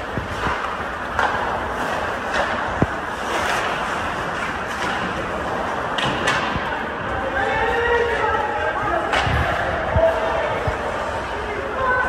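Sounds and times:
hockey sticks clacking on puck: 0:00.0 - 0:11.0
skates scraping on ice: 0:00.0 - 0:12.0.

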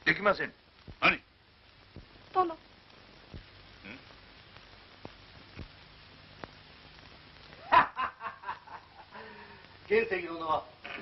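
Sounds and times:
burst of laughter: 0:07.6 - 0:09.4.

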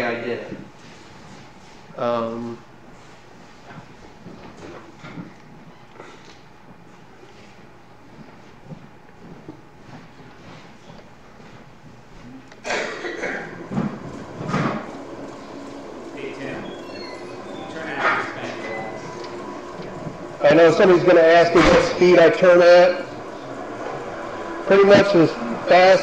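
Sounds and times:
wood lathe running: 0:13.5 - 0:26.0.

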